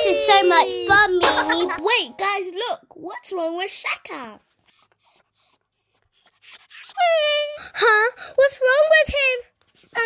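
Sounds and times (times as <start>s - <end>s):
dog whining: 4.7s - 10.0s.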